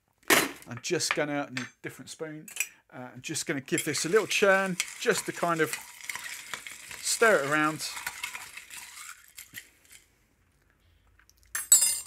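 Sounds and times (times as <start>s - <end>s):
spoon scraping ice in glass: 3.8s - 10.0s.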